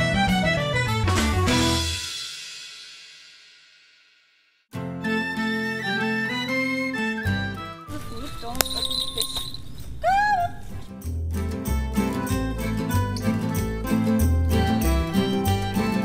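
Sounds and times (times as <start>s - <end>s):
song with steady bass beat: 11.0s - 16.0s.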